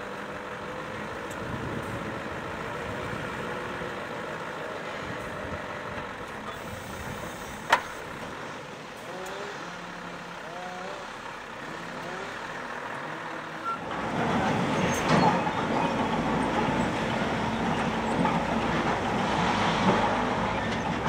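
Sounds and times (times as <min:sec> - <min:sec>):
diesel truck engine at low revs: 0:00.0 - 0:21.0.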